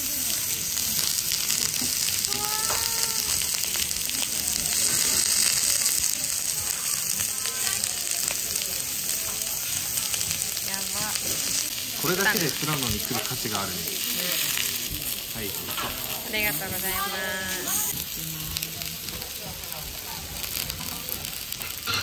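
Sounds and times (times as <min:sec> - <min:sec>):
meat sizzling on a grill pan: 0:00.0 - 0:22.0.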